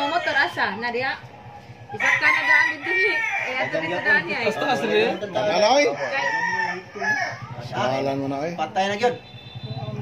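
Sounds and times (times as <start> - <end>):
roosters crowing: 0.0 - 8.2.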